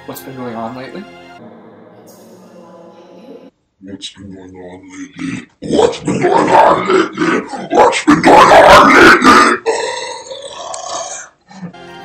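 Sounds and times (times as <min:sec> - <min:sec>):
soft sustained background music: 0:00.0 - 0:03.5, 0:11.8 - 0:12.0
deep growly distorted voice: 0:04.2 - 0:11.7.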